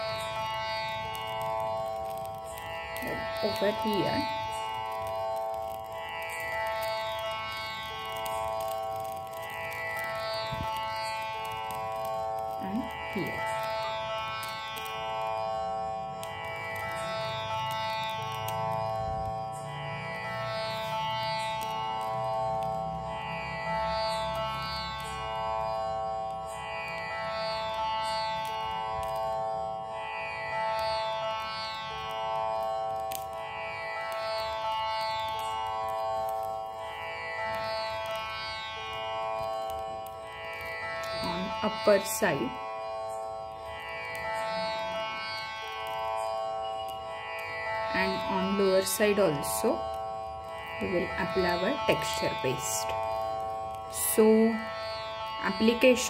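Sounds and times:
held drone: 0.0 - 56.0
string phrase: 47.2 - 56.0.

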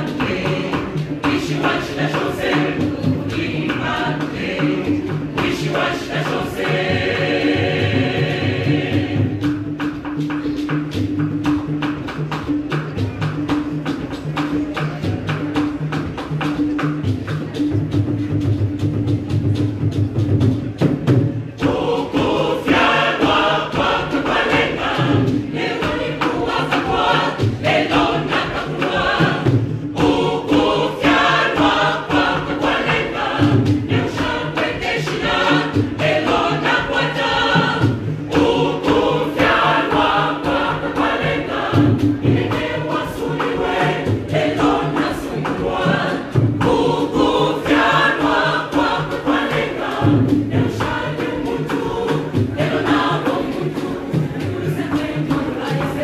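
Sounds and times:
choir singing gospel song: 0.0 - 12.0, 21.5 - 56.0
steady drum beat: 0.0 - 56.0.

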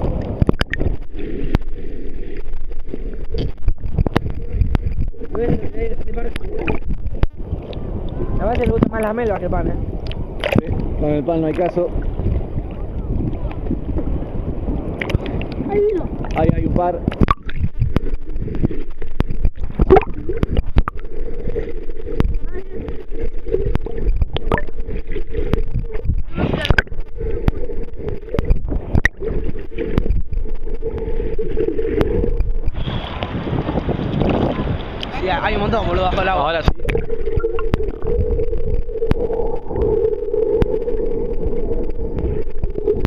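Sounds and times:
underwater clicks and knocks: 0.0 - 1.7, 2.4 - 9.4, 10.0 - 14.1, 14.9 - 15.6, 16.2 - 21.2, 22.0 - 35.2, 36.6 - 43.0
small waves washing: 0.0 - 43.0
underwater rushing slosh: 0.0 - 43.0
wind buffeting microphone: 2.5 - 43.0.

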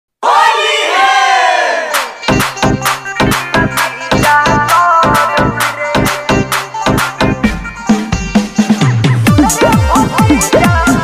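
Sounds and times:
group of voices shouting: 0.2 - 2.1.

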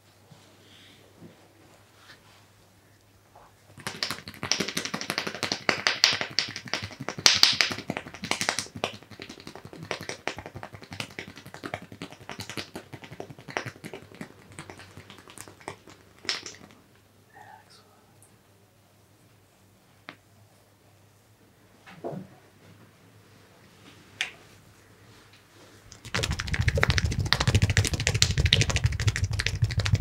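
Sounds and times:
hand patting and tapping skin: 3.8 - 16.8, 25.9 - 30.0.

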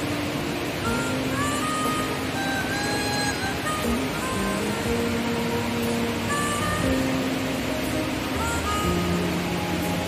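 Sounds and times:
music of long held notes: 0.0 - 10.0
river rushing over rocks: 0.0 - 10.0.

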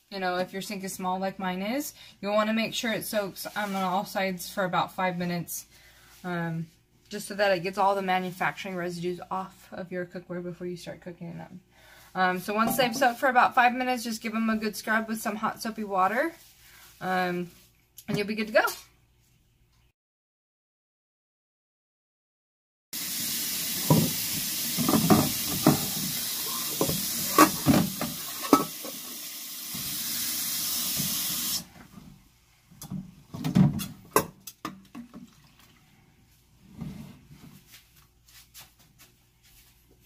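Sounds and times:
pots clattering in a sink: 12.6 - 13.3, 23.8 - 29.2
tap running into a sink: 23.7 - 31.6.

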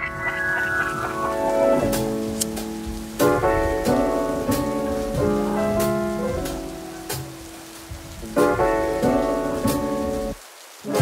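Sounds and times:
steady rain falling: 0.0 - 11.0
music of held chords: 0.8 - 11.0.

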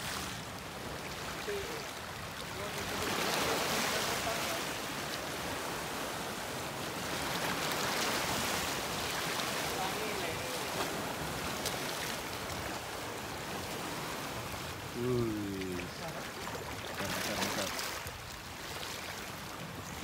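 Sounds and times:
sea waves washing over rocks: 0.0 - 19.8.

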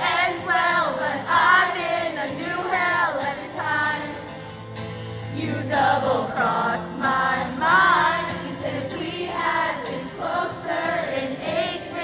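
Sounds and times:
woman singing: 0.0 - 4.2, 5.3 - 12.0
acoustic guitar: 0.0 - 12.0.

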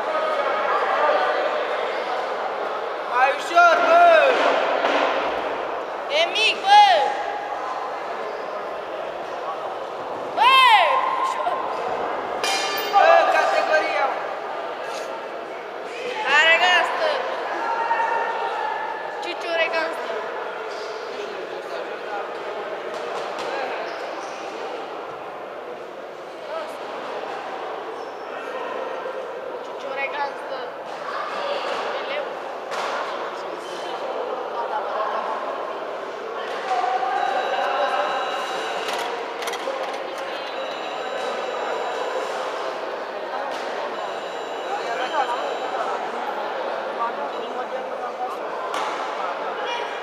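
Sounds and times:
echoing chatter of many voices: 0.0 - 50.0.

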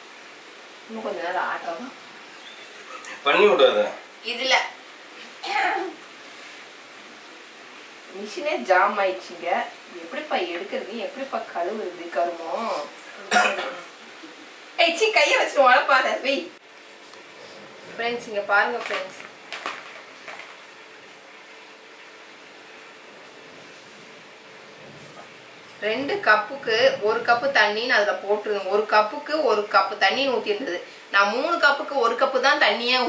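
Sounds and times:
faint constant hum: 0.0 - 33.0
steady background hiss: 0.0 - 33.0.

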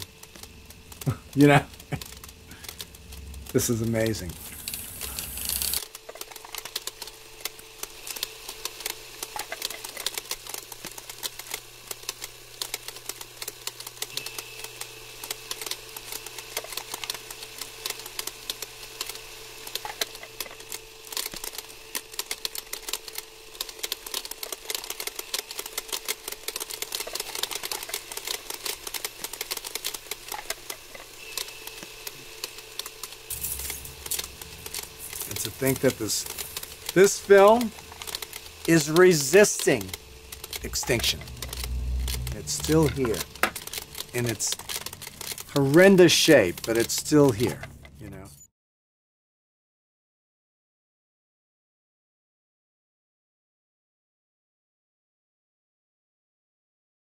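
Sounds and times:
faint high whine: 0.0 - 6.4, 14.0 - 17.1, 26.9 - 48.5
film projector clicking: 0.0 - 48.0
projector low hum: 0.0 - 48.4.

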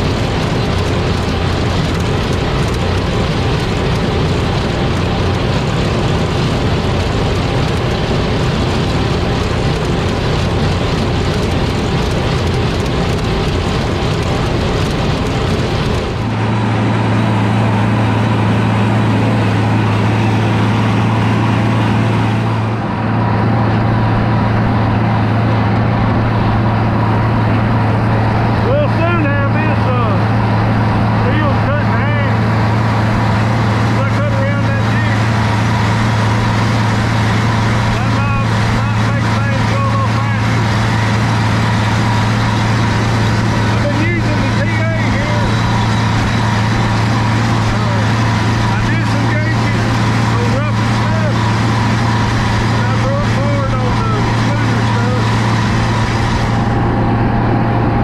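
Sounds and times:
mower cutter discs din: 0.0 - 58.0
tractor engine droning: 0.0 - 58.0.

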